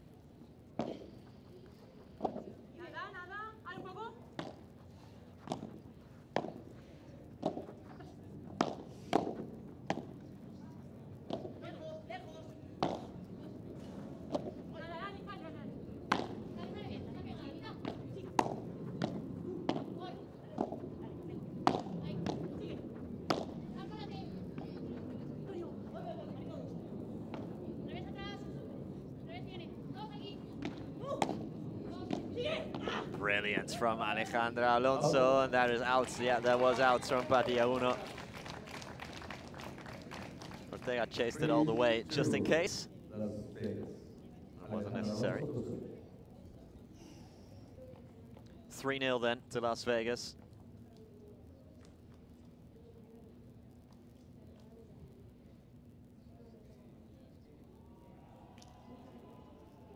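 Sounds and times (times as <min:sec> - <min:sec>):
background murmur: 0:00.0 - 0:59.9
rackets striking ball: 0:00.7 - 0:01.2, 0:02.2 - 0:02.5, 0:03.8 - 0:04.7, 0:05.4 - 0:10.3, 0:11.2 - 0:11.7, 0:12.8 - 0:14.8, 0:16.0 - 0:25.0, 0:30.5 - 0:38.0.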